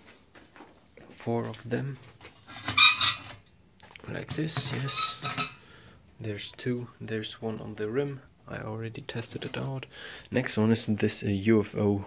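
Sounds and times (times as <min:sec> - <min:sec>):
metal rings clanking and scraping: 0:04.3 - 0:05.6.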